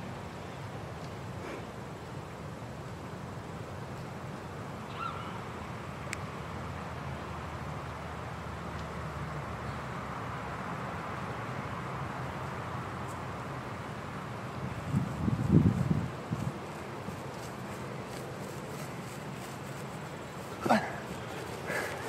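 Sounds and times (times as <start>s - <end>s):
wind rumble on microphone: 14.6s - 17.5s.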